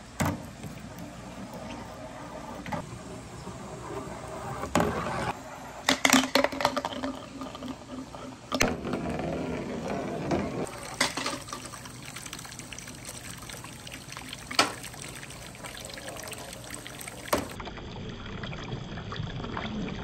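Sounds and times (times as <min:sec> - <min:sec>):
water splashing onto pavement: 0:10.7 - 0:17.6.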